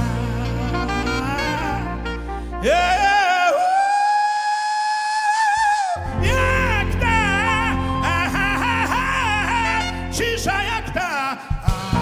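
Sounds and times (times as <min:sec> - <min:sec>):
full band playing: 0:00.0 - 0:03.4, 0:06.0 - 0:12.0
saxophone holding high note: 0:00.0 - 0:04.4, 0:06.0 - 0:10.9.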